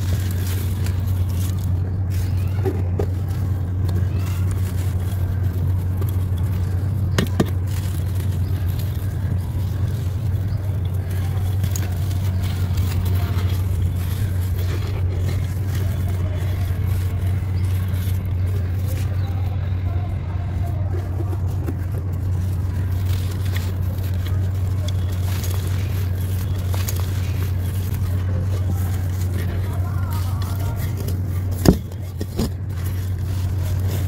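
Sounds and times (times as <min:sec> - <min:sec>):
dry clay crumbling between fingers: 0:00.0 - 0:34.0
steady low hum: 0:00.0 - 0:34.0.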